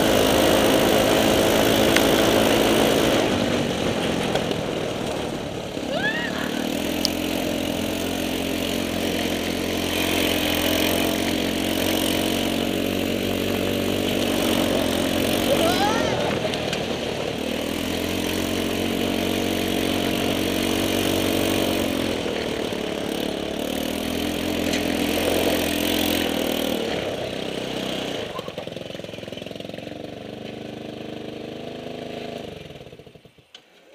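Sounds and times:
go-kart engine revving: 0:00.0 - 0:33.8.

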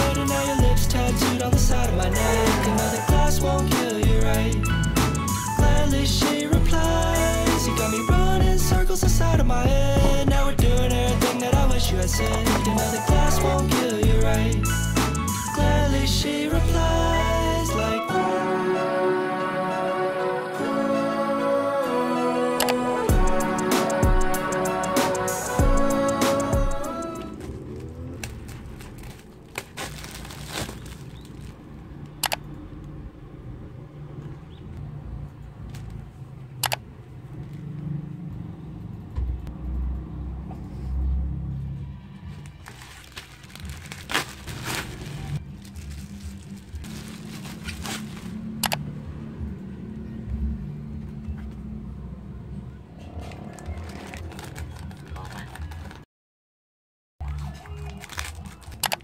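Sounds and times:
plastic packaging rustling: 0:27.2 - 0:31.7, 0:42.4 - 0:48.6, 0:53.4 - 0:56.0, 0:57.7 - 0:58.8.

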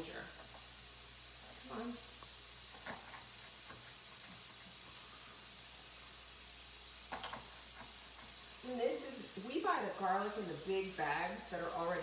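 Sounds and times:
mushrooms sizzling in oil: 0:00.0 - 0:12.0.

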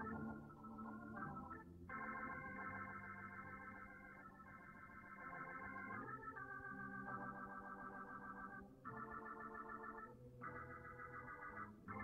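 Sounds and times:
soft organ chords: 0:00.0 - 0:12.0.

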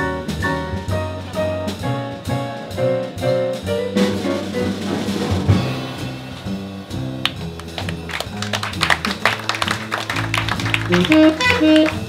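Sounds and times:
drums: 0:00.0 - 0:12.0
plucked double bass: 0:00.0 - 0:12.0
audience clapping: 0:07.2 - 0:12.0.

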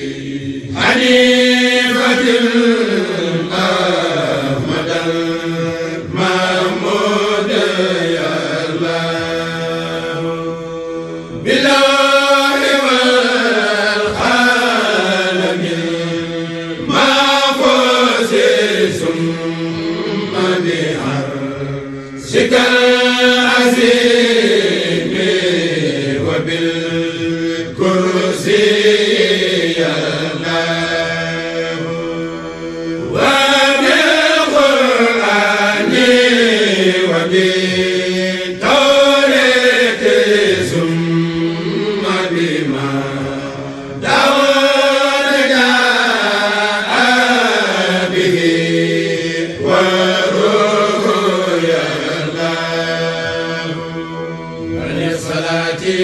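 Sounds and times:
person chanting devotional poem: 0:00.0 - 0:56.0.

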